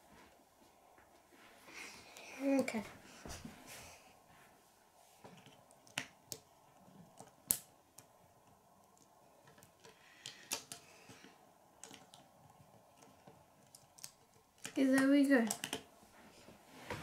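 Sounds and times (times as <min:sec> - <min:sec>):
plastic bricks clicking: 0:08.8 - 0:15.9.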